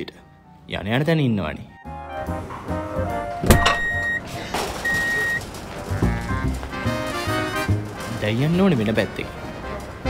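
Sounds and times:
background music: 0.0s - 10.0s
reversing alarm beeps: 3.6s - 5.4s.

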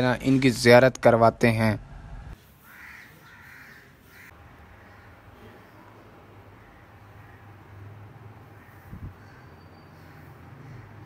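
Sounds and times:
crows cawing: 2.6s - 11.0s.

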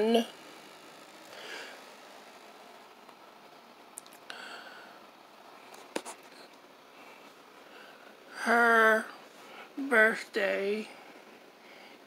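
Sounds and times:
faint scratchy rustling: 5.4s - 8.1s.

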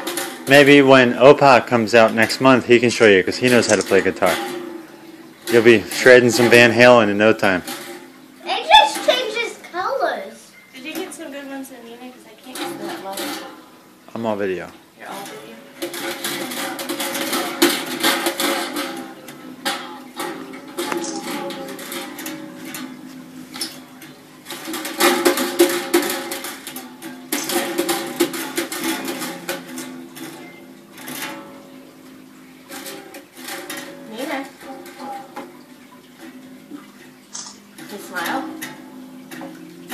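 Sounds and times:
acoustic guitar strumming: 0.0s - 39.9s.

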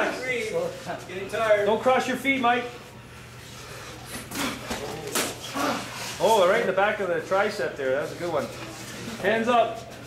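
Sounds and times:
fighters grunting: 4.3s - 6.1s.

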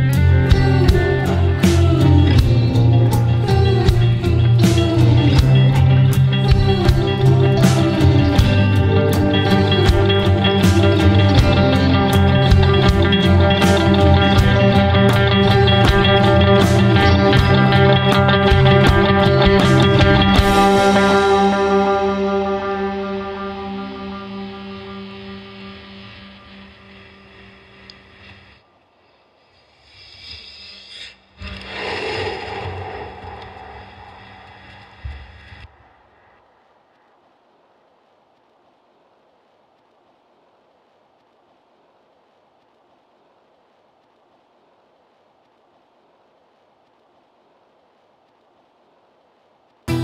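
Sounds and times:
acoustic guitar chord ringing: 1.0s - 27.8s
washes of effects noise: 9.8s - 37.4s.

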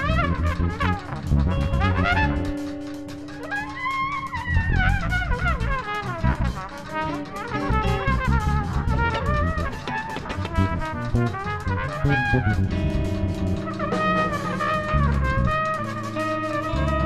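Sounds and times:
drums playing: 0.0s - 17.0s
electric bass: 0.0s - 17.0s
trumpet improvising jazz: 0.0s - 17.0s.

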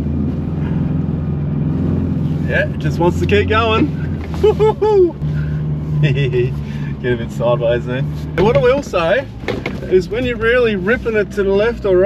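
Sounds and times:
diesel engine droning: 0.0s - 12.0s.

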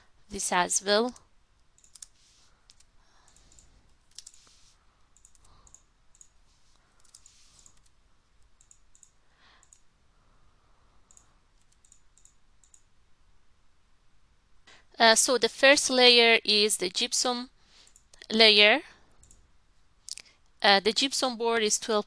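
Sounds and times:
keyboard clicks: 1.1s - 2.1s, 2.7s - 4.4s, 5.1s - 6.4s, 8.5s - 9.9s, 11.1s - 12.9s
computer mouse clicks: 1.1s - 9.9s, 11.0s - 12.9s, 17.8s - 18.3s, 19.2s - 19.4s.

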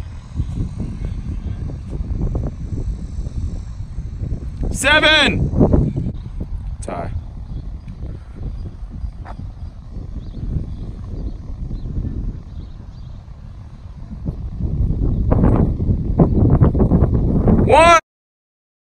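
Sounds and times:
wind on microphone: 0.0s - 18.0s.

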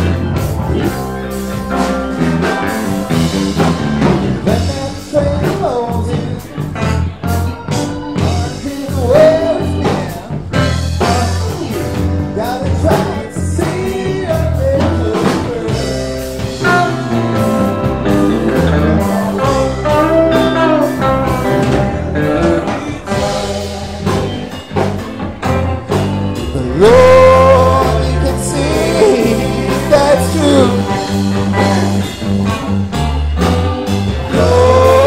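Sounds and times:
bass: 0.0s - 35.0s
electric guitar: 0.0s - 35.0s
keyboards: 0.0s - 35.0s
person singing: 4.4s - 24.6s, 26.4s - 32.2s, 34.2s - 35.0s
drum beat: 8.2s - 35.0s.

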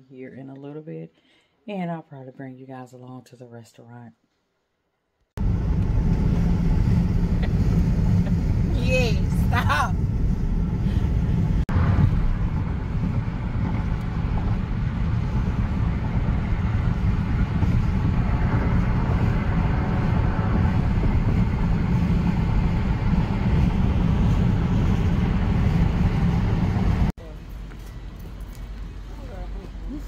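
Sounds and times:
car cabin rumble: 5.4s - 27.1s.

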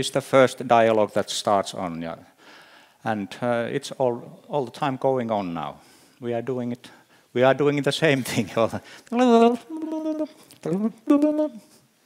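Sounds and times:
man cooing wordlessly: 9.5s - 11.7s.

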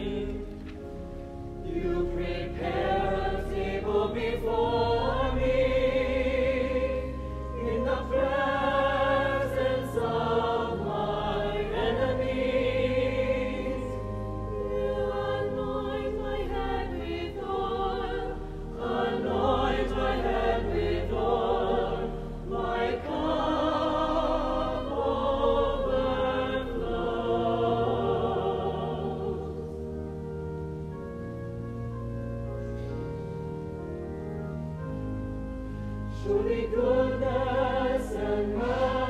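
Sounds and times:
mixed choir singing: 0.0s - 30.0s, 36.1s - 39.0s.

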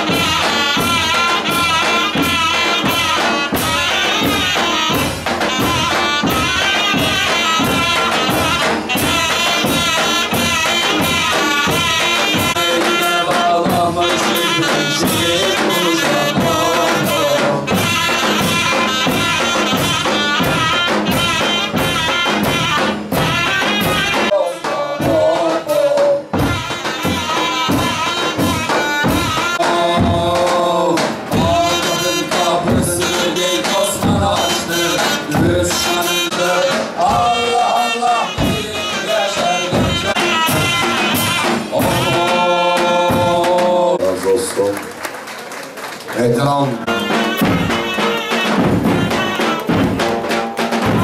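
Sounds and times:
zurnas playing melody: 0.0s - 25.4s, 26.3s - 30.7s, 31.4s - 44.0s, 46.8s - 51.0s
big drums beating: 0.0s - 44.3s, 46.6s - 51.0s.

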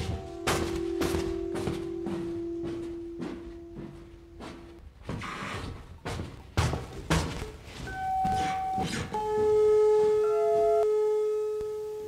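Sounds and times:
brief higher tone: 7.9s - 12.0s.

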